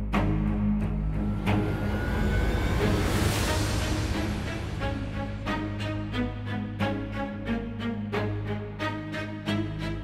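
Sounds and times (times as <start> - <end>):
low sustained drone: 0.7 - 6.5
rushing noise: 0.8 - 6.8.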